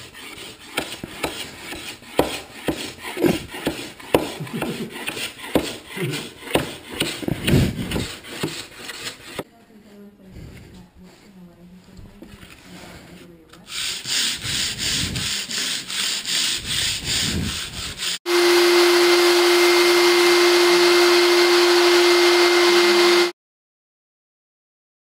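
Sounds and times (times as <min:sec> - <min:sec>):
hand sanding wood floor: 0:00.0 - 0:09.5, 0:12.5 - 0:23.3
floor buffer humming: 0:07.2 - 0:23.4.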